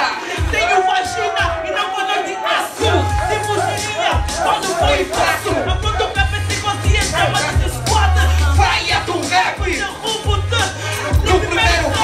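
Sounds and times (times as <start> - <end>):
crowd shouting along: 0.0 - 10.2, 10.8 - 12.0
hip hop beat with deep bass: 0.0 - 12.0.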